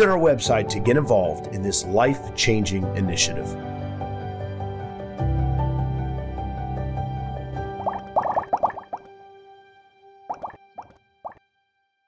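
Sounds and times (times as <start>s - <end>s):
background music: 0.0s - 11.4s
bubbly bloop sound effects: 7.8s - 9.1s, 10.3s - 11.4s.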